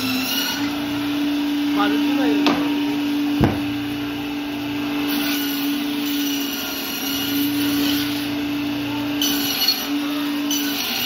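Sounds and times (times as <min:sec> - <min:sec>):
band saw cutting through fish: 0:00.0 - 0:11.0.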